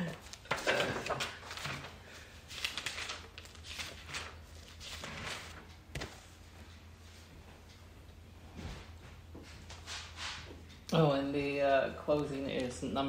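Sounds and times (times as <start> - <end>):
steady low hum: 0.0 - 13.0
shuffling and rustling: 0.1 - 7.7, 8.4 - 10.6.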